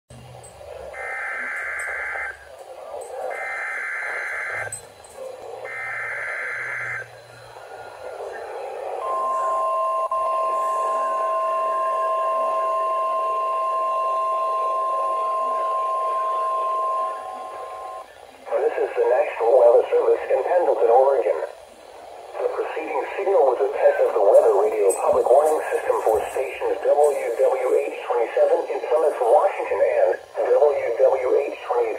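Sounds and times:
steady alarm tone: 0.4s - 31.9s
radio hiss: 0.6s - 13.6s, 14.4s - 31.9s
person speaking over radio: 18.5s - 21.6s, 22.4s - 31.9s.

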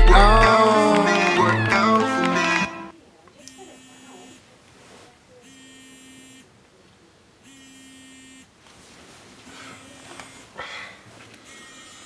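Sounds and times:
smartphone vibrating: 5.4s - 6.5s, 7.5s - 8.5s, 11.4s - 12.0s.

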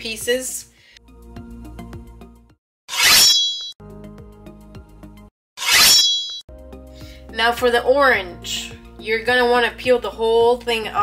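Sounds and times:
background music with steady tones: 0.0s - 2.6s, 3.8s - 5.3s, 6.5s - 11.0s.

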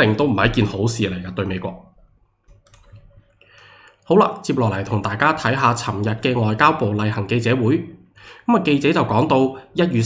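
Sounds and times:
man speaking: 0.0s - 1.9s, 4.1s - 10.0s
computer mouse clicks: 2.4s - 4.1s.

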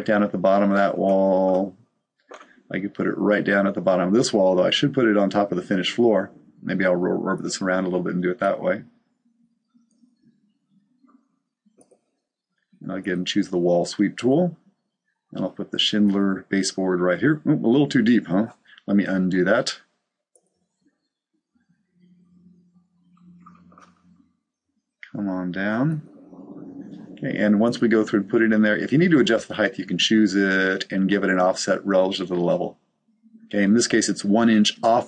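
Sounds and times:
man's voice: 0.0s - 1.7s, 2.3s - 8.8s, 12.8s - 14.6s, 15.4s - 19.8s, 25.0s - 26.1s, 27.1s - 32.7s, 33.5s - 35.0s
faint low hum: 0.0s - 11.2s, 12.8s - 14.6s, 15.3s - 19.8s, 21.9s - 24.4s, 25.0s - 35.0s
computer mouse clicks: 11.8s - 12.0s.

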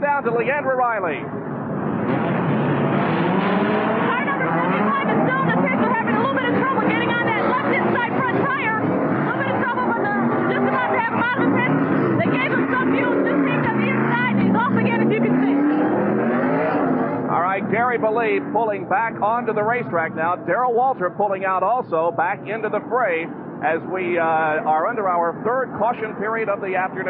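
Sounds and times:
race car engines: 0.0s - 27.0s.

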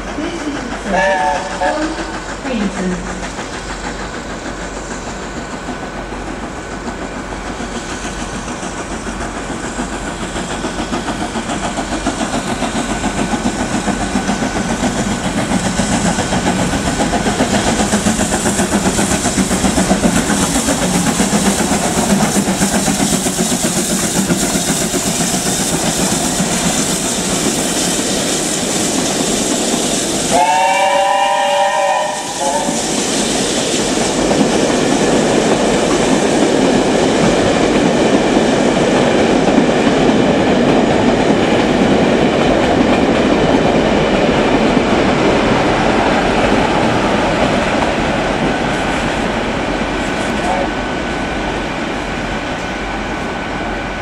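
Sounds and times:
steam train rolling past: 0.0s - 54.0s
train whistle: 0.9s - 2.0s, 30.3s - 32.9s.

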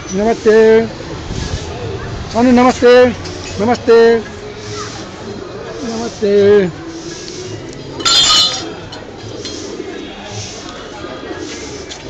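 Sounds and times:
bright metallic clink: 8.0s - 8.7s.

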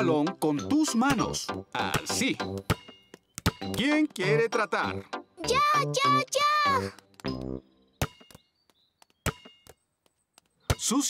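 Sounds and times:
cartoon basketball bouncing: 0.4s - 11.0s.

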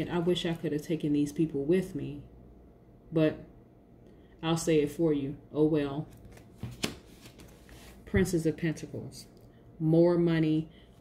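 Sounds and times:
cards rustling in hands: 6.1s - 8.1s.

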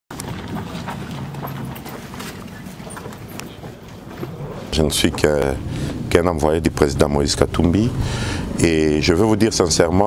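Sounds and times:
footsteps crunching on dirt: 0.1s - 6.0s.

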